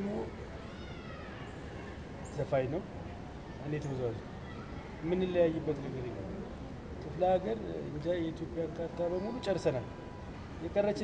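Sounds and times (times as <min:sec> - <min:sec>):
cat meowing faintly: 0:00.6 - 0:02.0.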